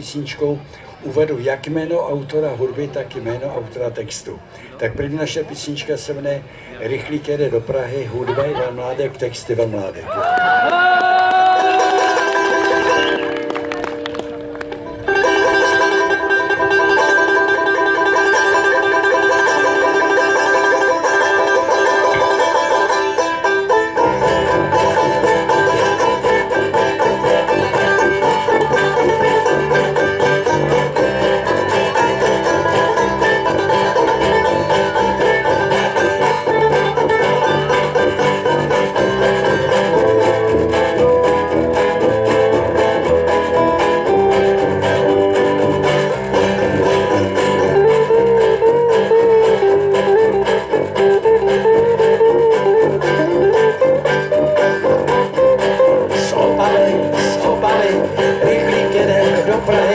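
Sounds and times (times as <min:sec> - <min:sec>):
electric guitar: 0:10.2 - 0:59.9
banjos strumming and picking: 0:11.6 - 0:59.9
sousaphone bass line: 0:14.8 - 0:59.9.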